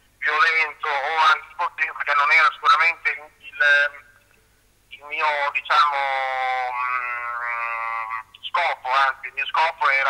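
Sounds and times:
young man's held hesitation sound: 0:04.9 - 0:10.0.

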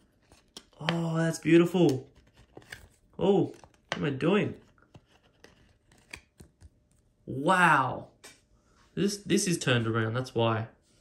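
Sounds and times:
card scraping on plastic: 0:01.8 - 0:06.6.

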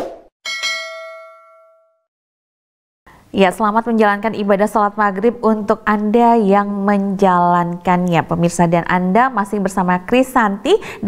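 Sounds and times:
bell-like ding: 0:00.4 - 0:02.1.

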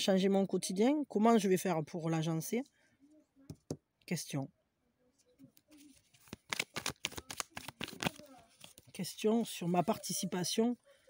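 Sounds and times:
cards being shuffled: 0:05.6 - 0:10.0.

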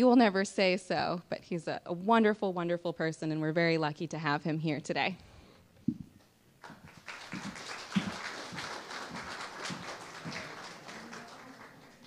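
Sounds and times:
audience applauding: 0:06.6 - 0:12.0.

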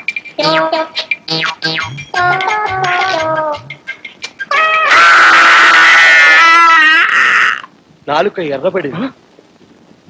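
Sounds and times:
drawn-out cry: 0:04.5 - 0:07.7.

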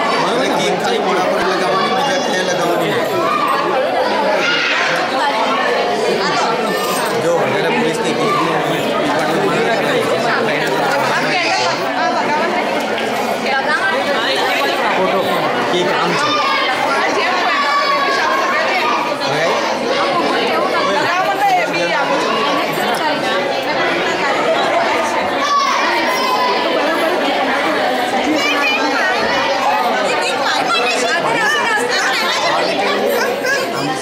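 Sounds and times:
crowd of voices talking: 0:00.0 - 0:34.0.

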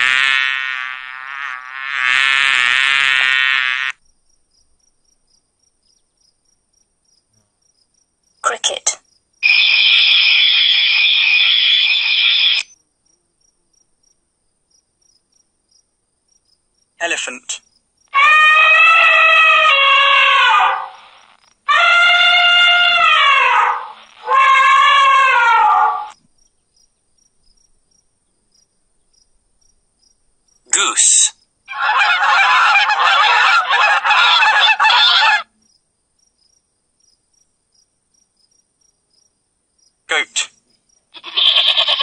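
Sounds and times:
long animal calls falling in pitch: 0:00.0 - 0:04.0, 0:09.4 - 0:12.6, 0:18.1 - 0:26.2, 0:31.1 - 0:35.5, 0:41.2 - 0:42.0
shrill animal trill: 0:08.4 - 0:12.7, 0:18.1 - 0:26.2, 0:31.0 - 0:35.6, 0:40.2 - 0:42.0.

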